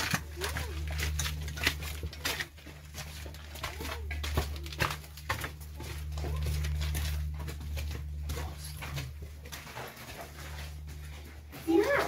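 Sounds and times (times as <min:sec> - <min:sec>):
steady low rumble: 0:00.0 - 0:11.9
footsteps on gravel: 0:00.0 - 0:12.0.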